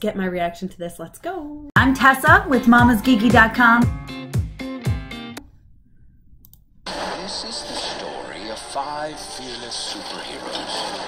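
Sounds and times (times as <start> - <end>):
faint clicks: 6.4 - 6.7
loud sound: 6.9 - 10.4.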